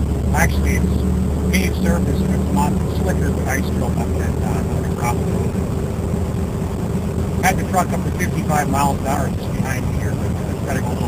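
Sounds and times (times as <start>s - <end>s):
truck engine drone: 0.0s - 11.0s
tyre and road noise: 0.0s - 11.0s.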